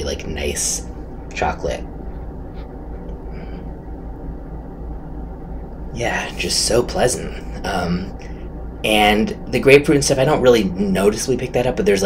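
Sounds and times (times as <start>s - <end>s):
low background rumble: 0.0s - 12.0s.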